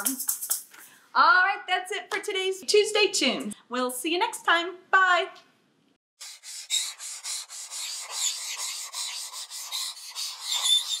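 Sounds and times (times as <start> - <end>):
marker scribbling on paper: 0.0 - 0.7, 6.2 - 11.0.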